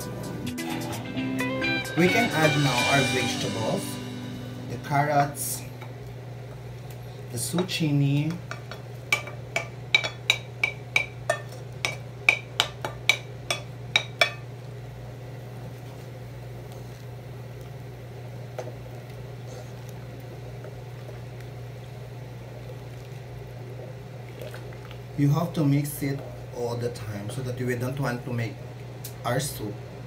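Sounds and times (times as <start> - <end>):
steady low hum: 0.0 - 30.0
stirring soup: 5.8 - 14.8, 15.4 - 27.6.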